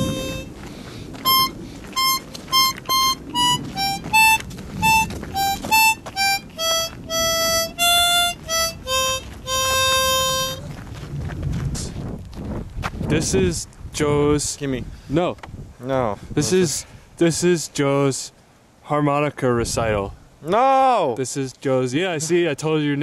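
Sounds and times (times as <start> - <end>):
harmonica playing a simple tune: 0.0 - 0.6, 1.2 - 10.7.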